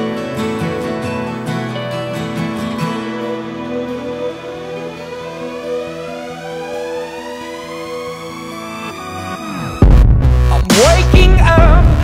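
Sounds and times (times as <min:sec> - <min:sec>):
background music: 0:00.0 - 0:12.0
siren wailing: 0:02.8 - 0:09.8.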